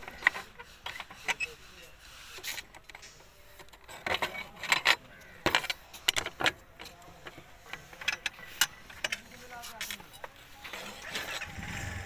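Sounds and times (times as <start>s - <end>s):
engine starting up: 11.0s - 12.0s.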